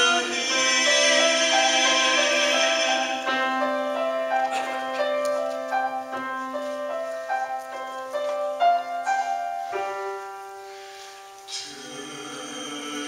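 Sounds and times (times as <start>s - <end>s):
voices singing: 0.0s - 4.2s, 11.5s - 13.0s
piano playing repeated notes: 0.0s - 13.0s.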